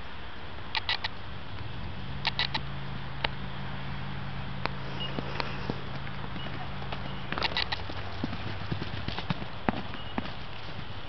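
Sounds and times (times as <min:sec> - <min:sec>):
hooves on dry grassy ground: 0:04.6 - 0:11.0.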